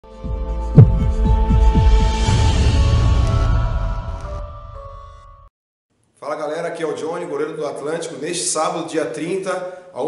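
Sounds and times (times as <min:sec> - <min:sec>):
loud hit: 0:00.8 - 0:01.5
deep pulses falling in pitch: 0:00.8 - 0:01.8.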